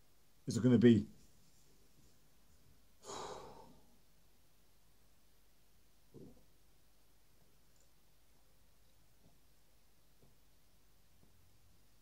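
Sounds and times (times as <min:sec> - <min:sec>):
man sighing: 0:03.0 - 0:03.8.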